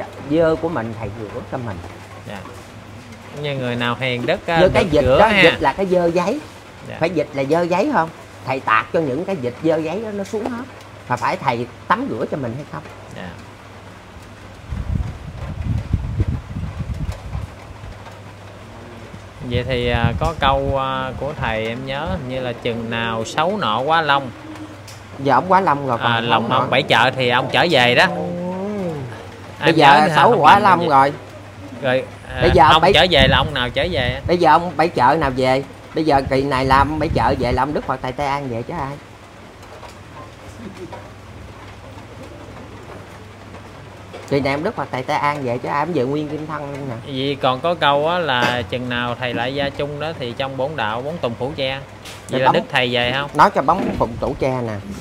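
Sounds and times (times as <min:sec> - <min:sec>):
constant low hum: 0:00.0 - 0:55.0
wind buffeting microphone: 0:00.2 - 0:10.3, 0:14.3 - 0:47.1, 0:51.9 - 0:55.0.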